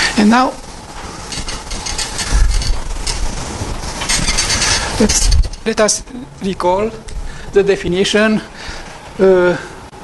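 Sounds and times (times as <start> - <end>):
eraser wiping a whiteboard: 0.0 - 5.3.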